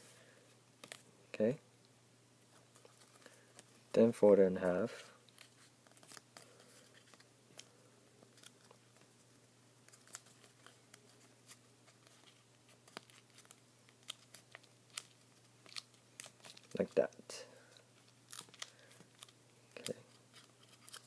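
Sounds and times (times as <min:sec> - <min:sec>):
paper crinkling and ticking: 0:05.2 - 0:09.2, 0:09.8 - 0:21.0.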